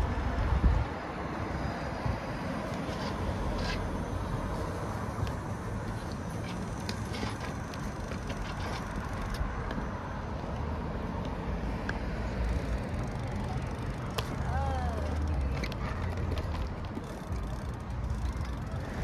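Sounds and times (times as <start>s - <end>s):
cars rumbling on road: 0.0s - 19.0s.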